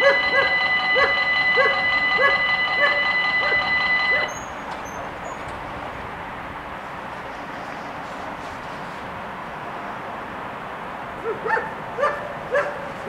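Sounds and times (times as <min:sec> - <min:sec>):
dog barking: 0:00.0 - 0:04.3, 0:11.2 - 0:13.0
level crossing warning bells: 0:00.0 - 0:06.8.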